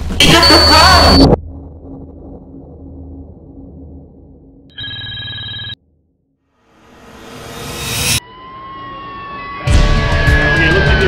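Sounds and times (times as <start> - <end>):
music: 6.4 - 11.0.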